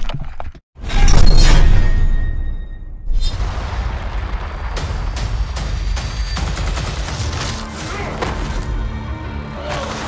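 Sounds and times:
low-pitched trailer music: 0:00.8 - 0:10.0
gunshots: 0:03.4 - 0:08.5.

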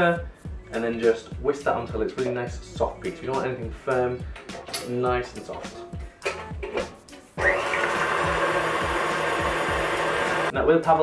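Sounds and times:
stand mixer whisking cream: 0:07.4 - 0:10.5.

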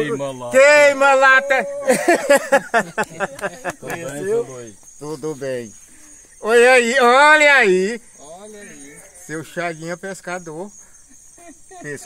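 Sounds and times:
person laughing: 0:01.8 - 0:04.0, 0:11.1 - 0:12.0.

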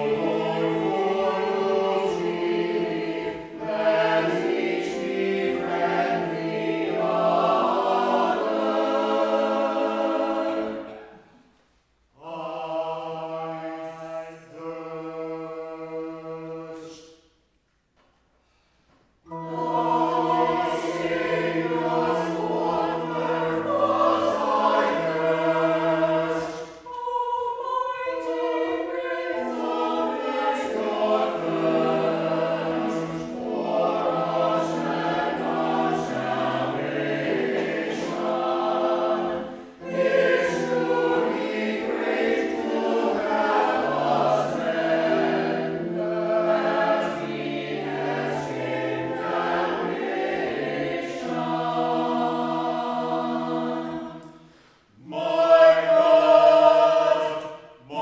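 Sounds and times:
choir singing in parts: 0:00.0 - 0:11.5, 0:12.1 - 0:17.4, 0:19.2 - 0:58.0.

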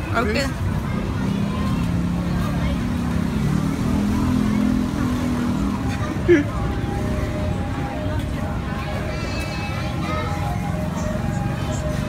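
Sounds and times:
street background noise: 0:00.0 - 0:12.0.

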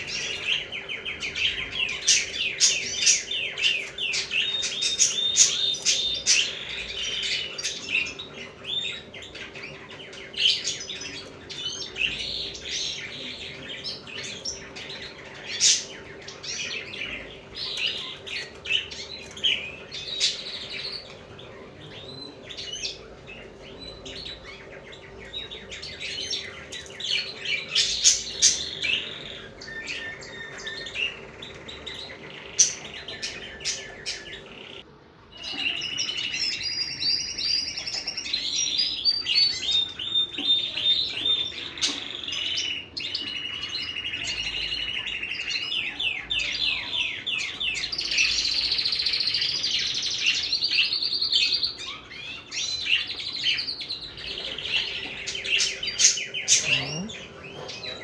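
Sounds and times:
birds chirping and trilling: 0:00.0 - 0:58.0.

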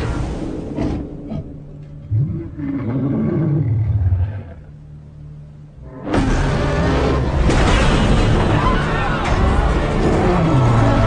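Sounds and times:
deep monster roar: 0:02.0 - 0:04.8, 0:09.7 - 0:11.0.

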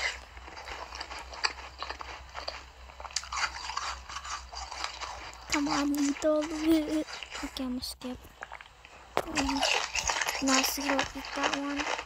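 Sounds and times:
person chewing crunchy treat: 0:00.0 - 0:12.0.

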